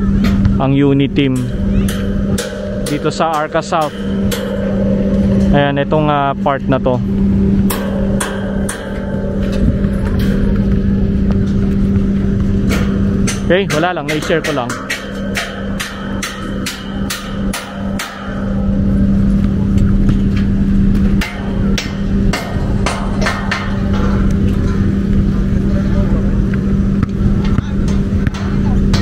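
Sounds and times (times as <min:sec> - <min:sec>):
low hum: 0:00.0 - 0:29.0
rumble of wind or traffic: 0:00.0 - 0:29.0
metal truss knocking and clanking: 0:00.1 - 0:25.8, 0:27.2 - 0:29.0.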